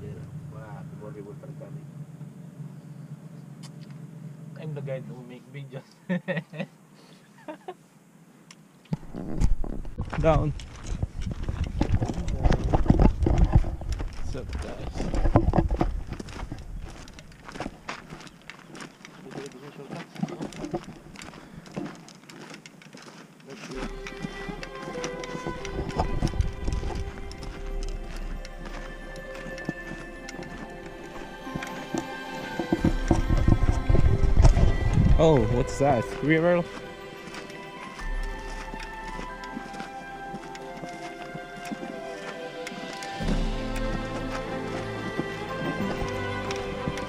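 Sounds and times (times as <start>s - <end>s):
low rumble on microphone: 9.0s - 17.5s, 25.5s - 31.4s, 32.6s - 36.0s
footsteps crunching on gravel: 9.0s - 47.0s
music with long held notes: 23.7s - 47.0s.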